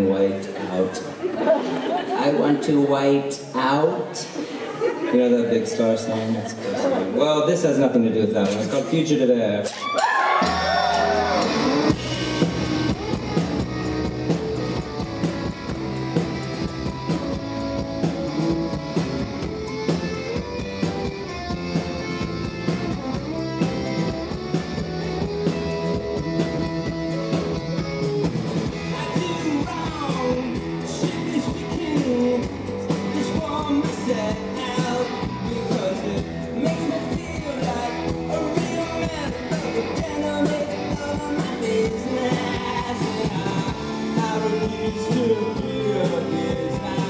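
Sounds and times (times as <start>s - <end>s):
drums: 9.6s - 47.0s
electric guitar: 9.7s - 47.0s
bass guitar: 10.2s - 47.0s.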